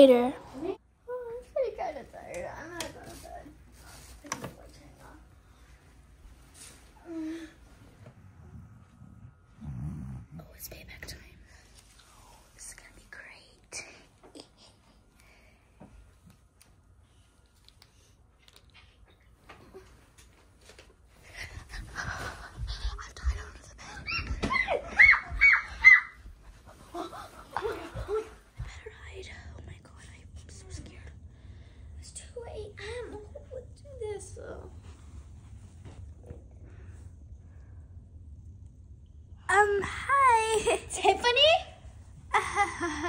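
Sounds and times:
low rumble: 7.6s - 12.8s
faint whispering: 8.8s - 15.2s, 21.2s - 23.9s, 28.6s - 31.3s.

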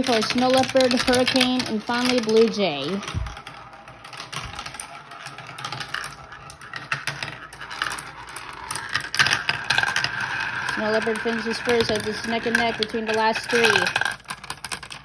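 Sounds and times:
marbles rattling down plastic track: 0.0s - 15.0s
marbles whirring in plastic funnel: 0.0s - 15.0s.

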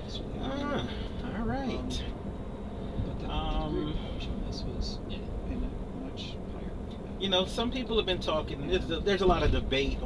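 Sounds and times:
road and tyre rumble in car: 0.0s - 10.0s.

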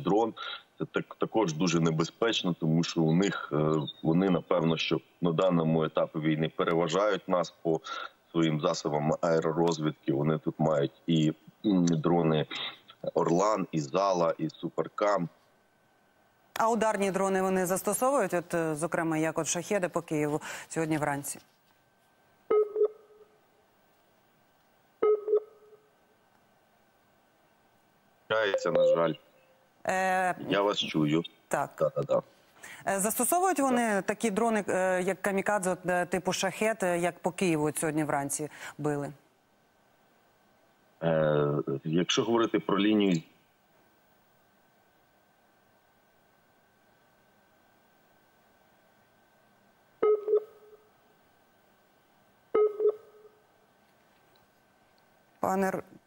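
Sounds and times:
faint steady whine: 0.0s - 56.0s
faint steady high tone: 28.3s - 29.7s
short electronic beeps: 28.5s - 29.2s.

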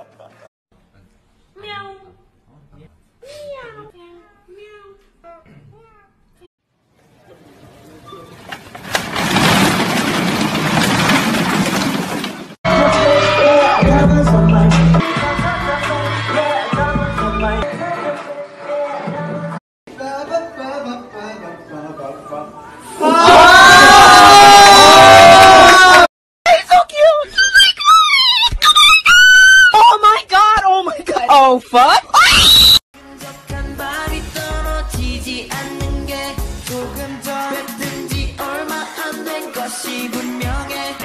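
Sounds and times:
cart tipping over with crash: 8.5s - 12.6s
plastic balls clattering on floor: 8.6s - 12.6s
high-pitched shrieking voice: 27.2s - 30.0s.

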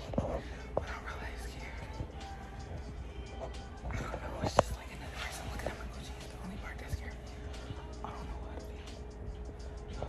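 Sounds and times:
woman whispering: 0.0s - 10.0s.

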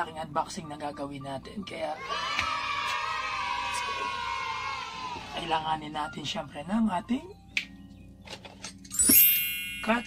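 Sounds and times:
background music: 0.0s - 10.0s
bright chime: 8.9s - 10.0s.

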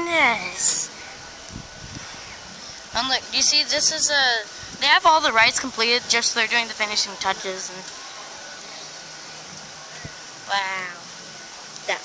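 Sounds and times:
outdoor background hiss: 0.0s - 12.0s.

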